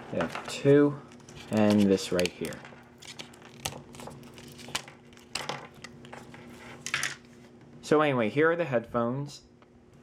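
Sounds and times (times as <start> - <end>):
plastic packaging crinkling: 1.2 - 6.1.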